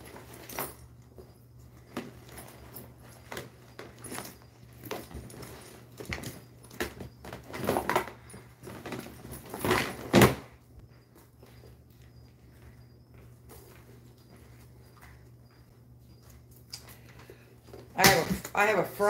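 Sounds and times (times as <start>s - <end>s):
handbags being rummaged through: 0.0s - 19.0s.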